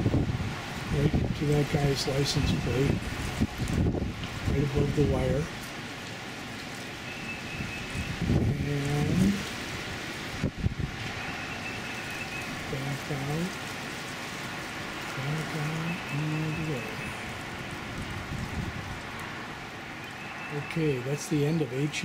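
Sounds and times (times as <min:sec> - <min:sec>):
steady hiss: 0:08.0 - 0:22.0.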